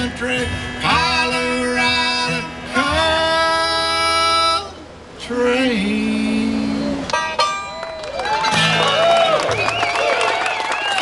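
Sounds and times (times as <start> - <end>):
bluegrass band playing: 6.5 - 9.8
audience cheering and whooping: 7.6 - 11.0
audience clapping: 7.7 - 11.0.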